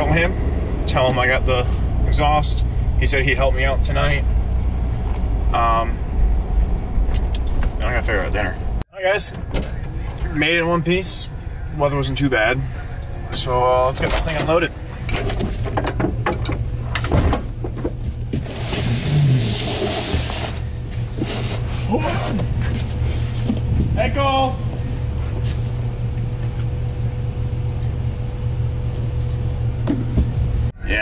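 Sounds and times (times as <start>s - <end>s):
car engine idling: 0.0s - 18.3s, 20.5s - 30.8s.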